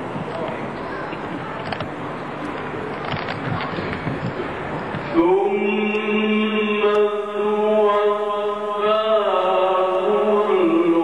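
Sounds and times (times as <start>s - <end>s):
audience voices: 0.0s - 9.1s
melodic recitation through a microphone: 4.0s - 11.0s.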